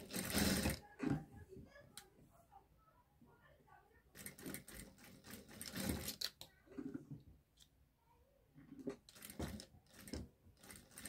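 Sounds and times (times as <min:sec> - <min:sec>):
sewing machine stitching: 0:00.0 - 0:01.2, 0:04.1 - 0:06.3, 0:08.8 - 0:11.0.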